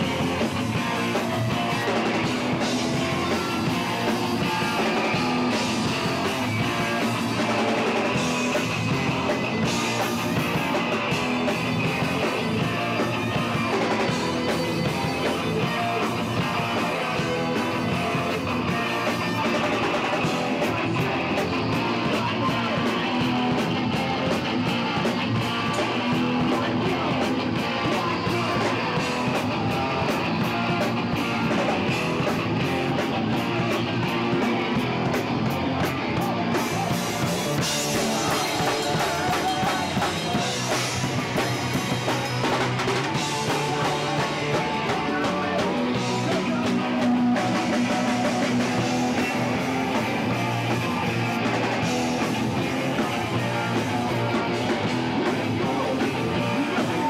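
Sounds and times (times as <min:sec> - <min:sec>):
live rock band: 0:00.0 - 0:57.0.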